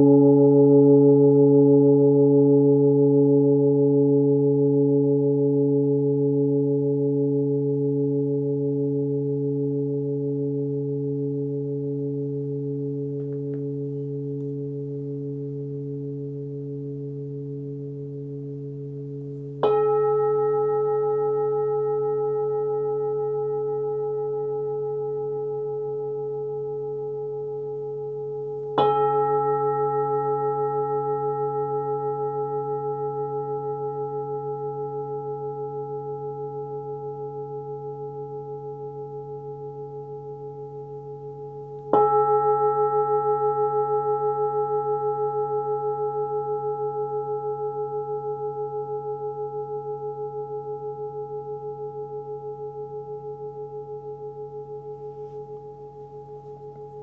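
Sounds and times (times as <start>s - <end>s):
singing bowl ringing: 0.0s - 57.0s.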